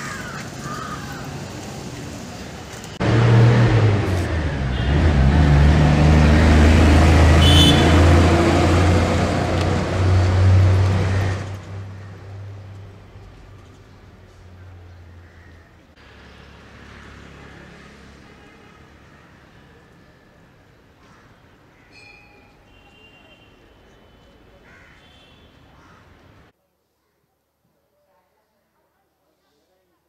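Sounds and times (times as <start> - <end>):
traffic noise: 0.0 - 26.6
vehicle engine running: 3.0 - 13.8.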